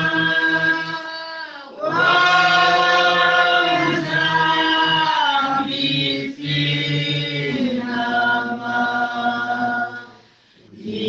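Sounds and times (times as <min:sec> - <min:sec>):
voices singing a hymn: 0:00.0 - 0:11.0.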